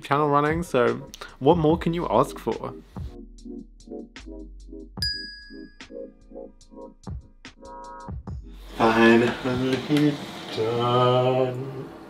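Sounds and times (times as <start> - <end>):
background music with steady beat: 0.0 - 10.7
bright ding: 5.0 - 6.0.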